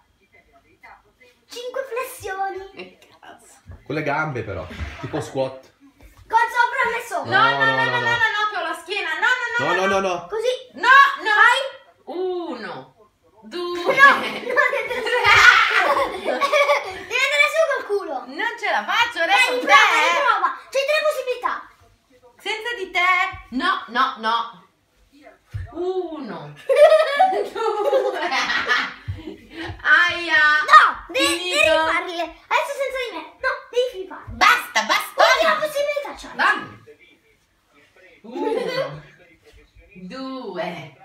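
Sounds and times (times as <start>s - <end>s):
excited voices exclaiming: 6.5s - 9.8s, 13.8s - 17.9s, 18.9s - 20.6s
woman and boy laughing: 13.9s - 17.0s, 26.7s - 29.4s.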